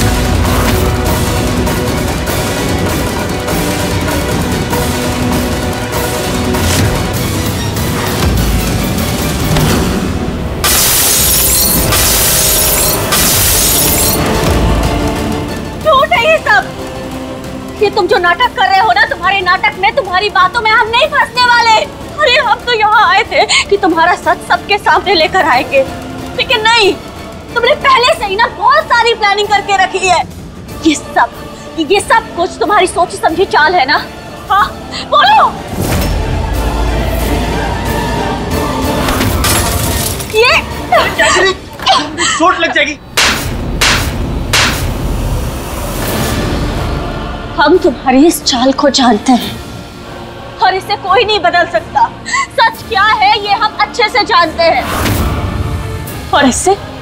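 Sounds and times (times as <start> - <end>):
dramatic background music: 0.0 - 57.0
glass shattering on hard floor: 39.4 - 40.4.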